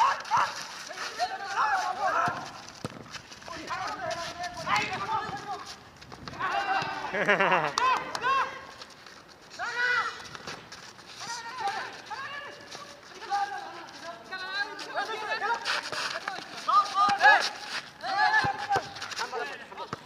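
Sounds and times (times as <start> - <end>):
men shouting: 0.0 - 2.6, 6.3 - 8.7.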